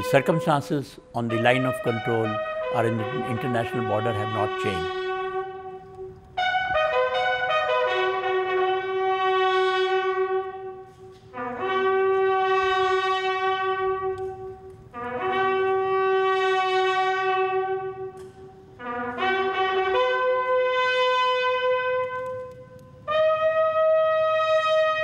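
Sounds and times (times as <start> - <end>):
bugle holding long note: 1.2 - 25.0.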